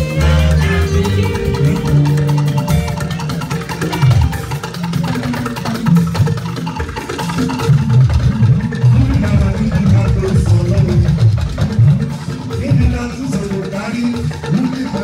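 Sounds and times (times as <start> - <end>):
voices singing through microphones: 0.0 - 4.6
bass guitar line: 0.0 - 6.3, 7.7 - 13.0
drums: 0.0 - 15.0
hand percussion: 0.0 - 15.0.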